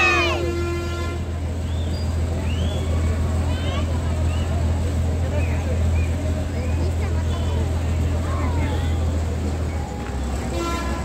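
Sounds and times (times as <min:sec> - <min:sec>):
crane engine drone: 0:00.0 - 0:11.0
voices: 0:00.0 - 0:11.0.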